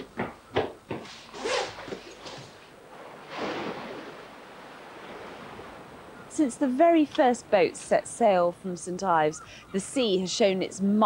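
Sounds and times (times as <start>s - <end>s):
waves breaking on rocks: 2.9s - 7.1s.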